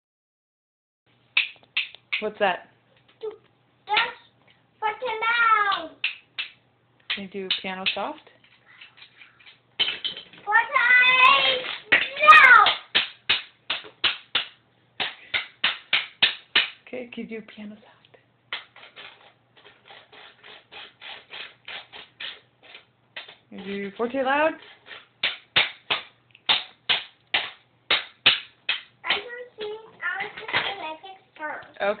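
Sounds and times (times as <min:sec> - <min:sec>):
rhythm sticks clacking: 0:01.3 - 0:02.4, 0:05.7 - 0:10.3, 0:11.0 - 0:16.8, 0:25.2 - 0:30.8
child's voice: 0:03.2 - 0:06.0, 0:10.4 - 0:12.8, 0:29.0 - 0:31.8.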